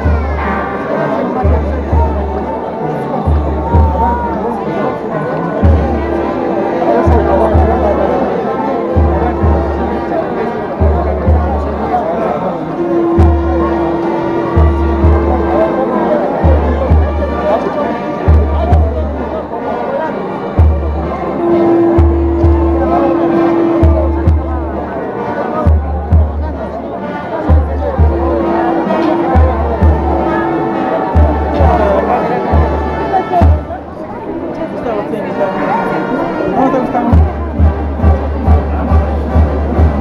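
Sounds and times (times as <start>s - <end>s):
crowd voices: 0.0s - 40.0s
bass drum beating: 3.3s - 4.4s, 8.9s - 10.2s, 10.8s - 11.8s, 12.8s - 15.8s, 16.4s - 17.4s, 18.3s - 19.2s, 20.6s - 25.0s, 25.6s - 26.8s, 27.4s - 33.9s, 37.1s - 40.0s
held low brass note: 5.6s - 19.2s, 20.6s - 34.0s.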